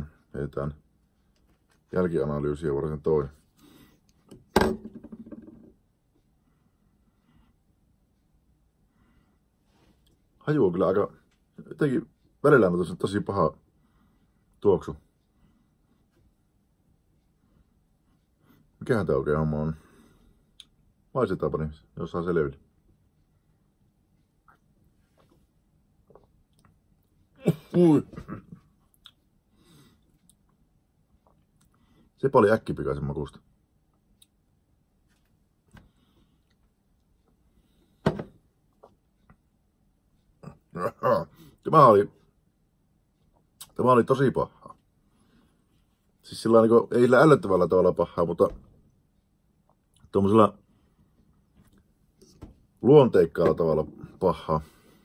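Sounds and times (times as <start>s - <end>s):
hard object thunk with ringing: 4.6s - 5.7s.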